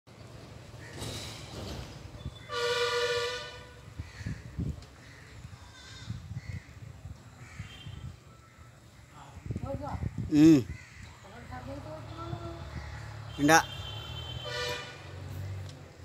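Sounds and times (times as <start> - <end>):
outdoor background noise: 0.1 - 16.0
horn sounding steady tone: 2.4 - 3.9, 13.2 - 15.3.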